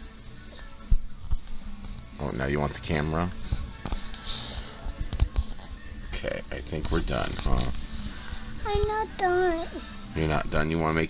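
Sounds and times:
background music from television: 0:00.0 - 0:11.0.

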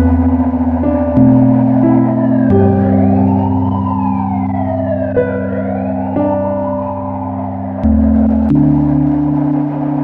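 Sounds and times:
ambient music low chords: 0:00.0 - 0:10.0
siren wailing: 0:00.0 - 0:10.0.

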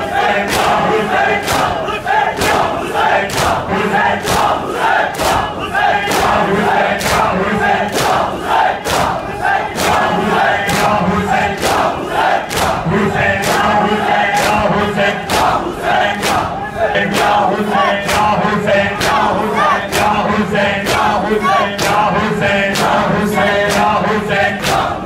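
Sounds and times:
crowd chanting: 0:00.0 - 0:25.0.

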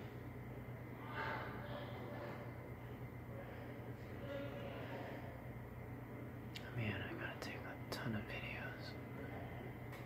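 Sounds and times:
steady low hum: 0:00.0 - 0:10.0
soft whispered voice: 0:06.6 - 0:09.8.

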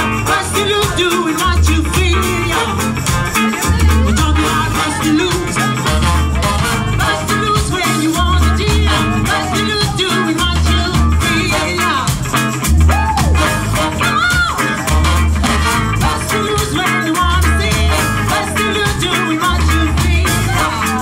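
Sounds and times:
woman singing: 0:00.0 - 0:12.3, 0:12.9 - 0:21.0
funk brass band playing: 0:00.0 - 0:21.0
sousaphone bass riff: 0:00.0 - 0:21.0.

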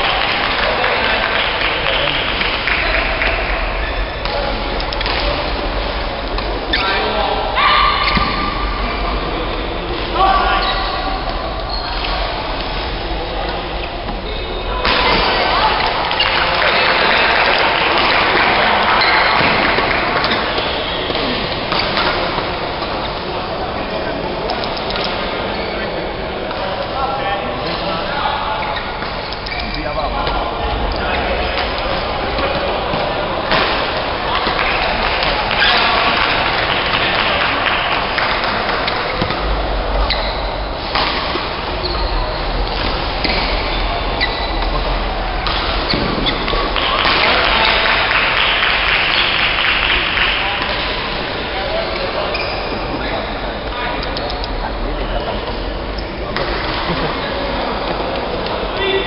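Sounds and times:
people talking: 0:00.0 - 0:59.0
rackets hitting shuttlecock: 0:04.2 - 0:05.6, 0:14.8 - 0:23.0, 0:31.5 - 0:37.3, 0:38.2 - 0:40.2, 0:40.8 - 0:41.6, 0:45.4 - 0:50.9
shoes on court floor: 0:14.8 - 0:23.2, 0:45.4 - 0:48.2.

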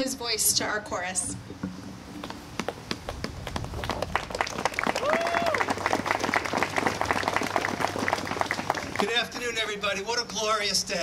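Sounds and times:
crowd applauding: 0:03.8 - 0:09.8.

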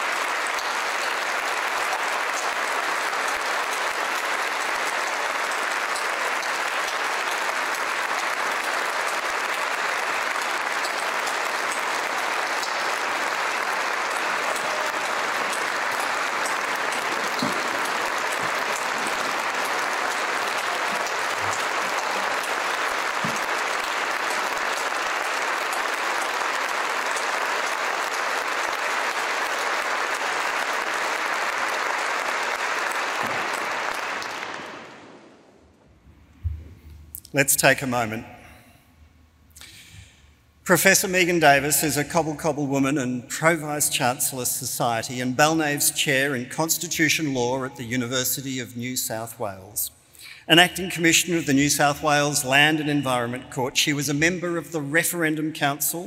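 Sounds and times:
large audience applauding: 0:00.0 - 0:35.7.

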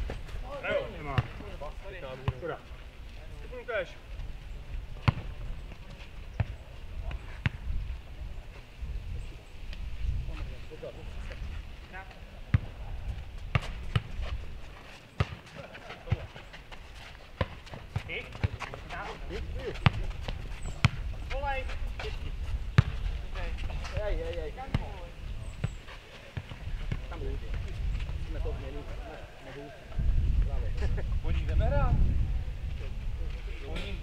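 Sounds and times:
football kicked and bouncing: 0:05.0 - 0:07.6, 0:12.5 - 0:12.8, 0:15.2 - 0:16.4, 0:17.4 - 0:19.0, 0:19.6 - 0:21.3, 0:22.8 - 0:25.0.

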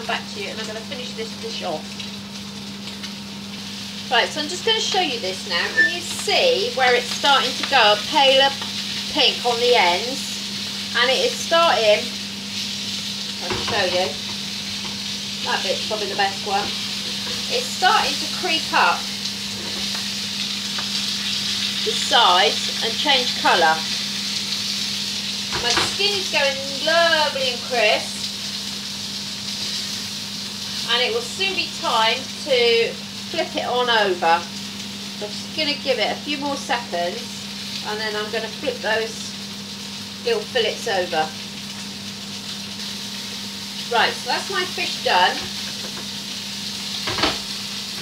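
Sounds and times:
fish sizzling in a hot pan: 0:00.0 - 0:48.0
low even hum: 0:00.0 - 0:48.0.

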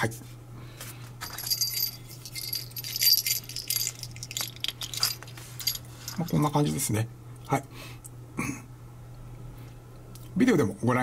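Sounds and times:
high jingling rattle: 0:01.2 - 0:06.8.

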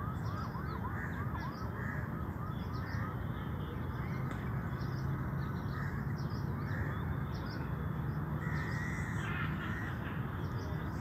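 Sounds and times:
crows cawing: 0:00.0 - 0:02.2, 0:05.7 - 0:07.0, 0:08.4 - 0:10.2
birds calling: 0:00.0 - 0:11.0.

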